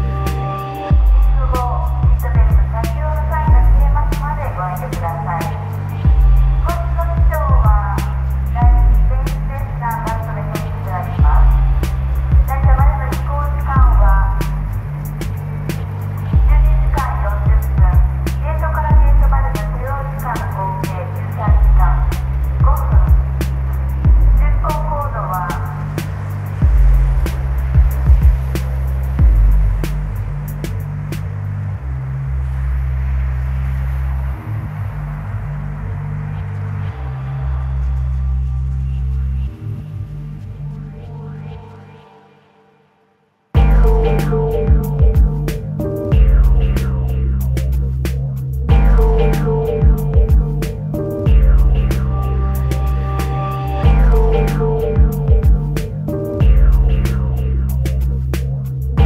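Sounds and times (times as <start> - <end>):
steady drum pattern: 0.0 - 31.2, 43.6 - 59.0
instrumental hip hop beat: 0.0 - 31.4, 43.6 - 59.0
deep bass notes: 0.0 - 41.7, 43.6 - 59.0
melodic line: 43.6 - 46.8, 48.7 - 57.3.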